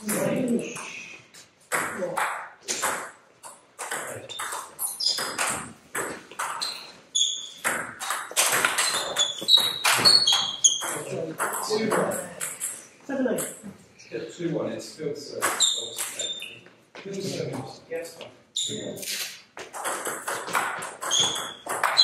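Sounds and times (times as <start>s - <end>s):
ping-pong ball hitting bats: 1.6s - 13.6s, 15.3s - 16.6s, 19.6s - 22.0s
ping-pong ball bouncing on table: 1.7s - 6.7s, 7.6s - 12.8s, 19.6s - 22.0s.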